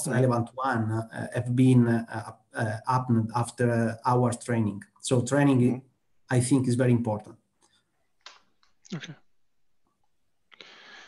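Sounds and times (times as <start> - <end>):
person saying okay: 8.9 - 9.2.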